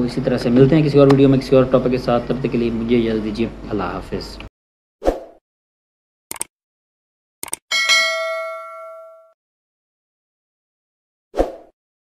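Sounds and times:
bell chime ding: 0:07.7 - 0:09.4.

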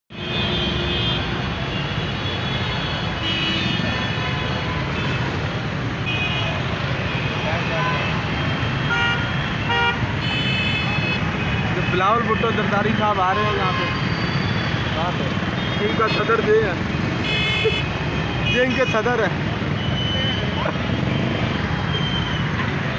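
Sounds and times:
car and motorcycle engines rumbling: 0:00.1 - 0:22.9
car horns honking: 0:06.0 - 0:22.5.

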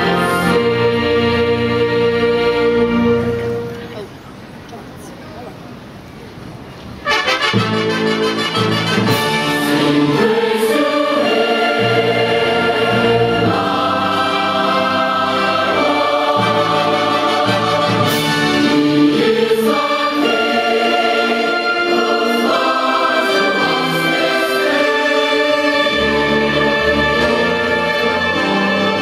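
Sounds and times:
choir singing held chords: 0:00.0 - 0:03.7, 0:07.0 - 0:29.0
orchestra accompanying: 0:00.0 - 0:04.2, 0:07.0 - 0:29.0.

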